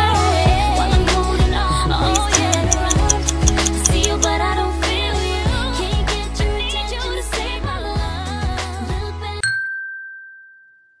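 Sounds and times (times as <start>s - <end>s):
background pop music: 0.0s - 9.4s
high bell-like ding: 9.4s - 11.0s.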